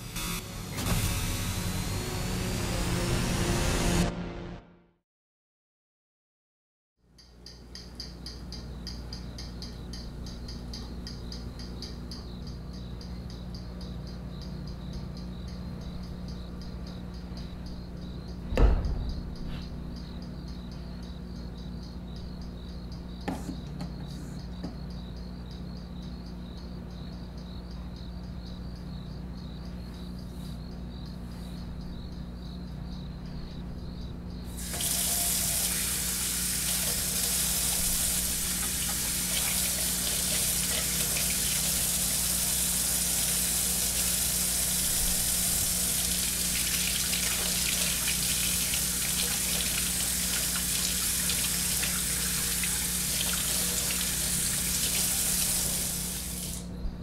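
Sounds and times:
faint rhythmic chirping: 7.0s - 57.0s
faucet water running into sink: 34.6s - 56.6s
hands being washed: 34.6s - 56.6s.

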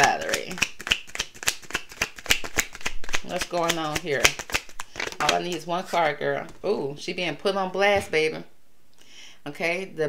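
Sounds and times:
cards being shuffled: 0.0s - 6.6s.

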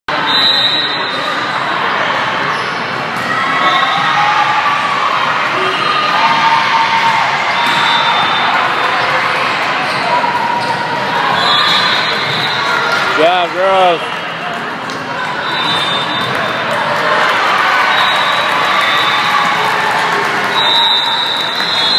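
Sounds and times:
players calling and chattering: 0.1s - 21.9s.

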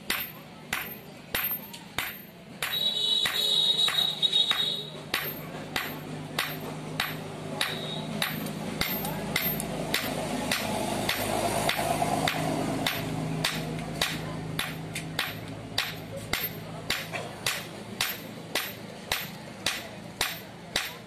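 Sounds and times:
hammer striking steel on anvil: 0.0s - 21.0s.

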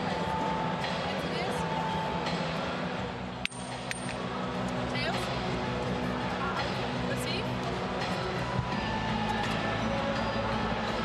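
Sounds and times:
indoor hall hum: 0.0s - 11.0s.

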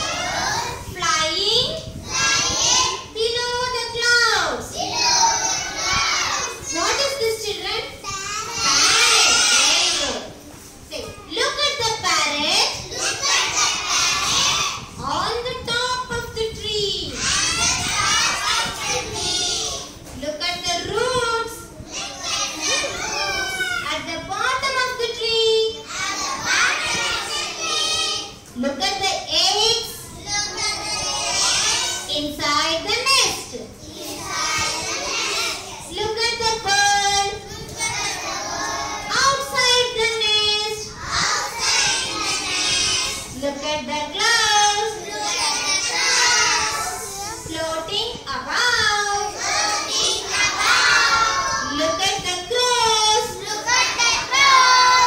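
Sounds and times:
children speaking and chanting: 0.0s - 55.0s.

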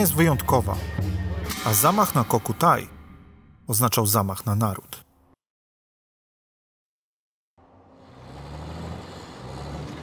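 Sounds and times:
road noise: 7.6s - 10.0s
vehicle engines humming: 7.6s - 10.0s.

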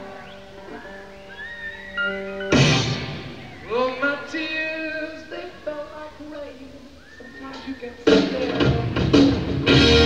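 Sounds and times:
man singing unaccompanied: 3.6s - 9.0s.

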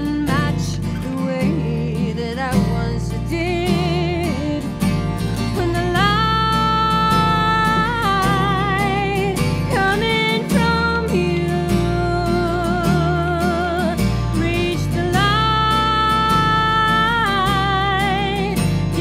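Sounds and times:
plucked acoustic guitar: 0.0s - 19.0s
woman singing with vibrato: 0.0s - 19.0s.

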